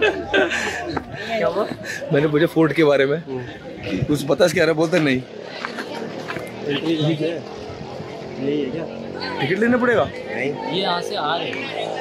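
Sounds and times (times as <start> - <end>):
men talking in a group: 0.0 - 12.0.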